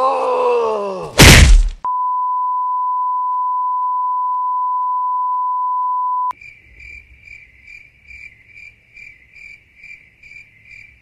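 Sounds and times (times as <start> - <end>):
loud slap on the face: 1.2 - 1.8
high beep tone: 1.9 - 6.3.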